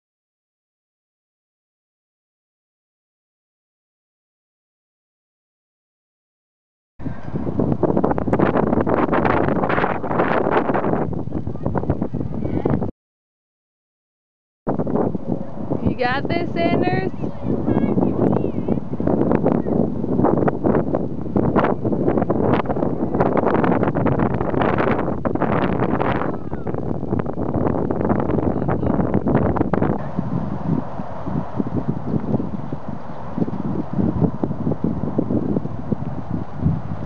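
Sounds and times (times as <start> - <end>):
wind buffeting microphone: 7.0 - 12.9, 14.7 - 37.0.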